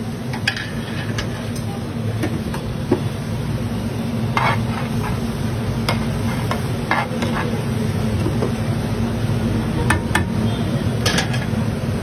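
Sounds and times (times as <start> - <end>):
steady sizzle: 0.0 - 12.0
metal spatula scraping griddle: 0.4 - 1.5, 4.3 - 5.3, 5.9 - 7.6.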